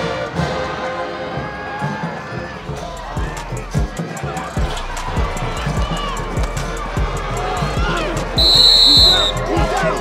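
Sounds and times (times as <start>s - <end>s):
referee's whistle: 8.4s - 9.5s.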